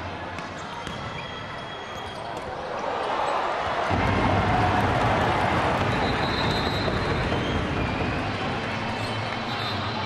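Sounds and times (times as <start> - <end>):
crowd noise in an arena: 0.0 - 10.0.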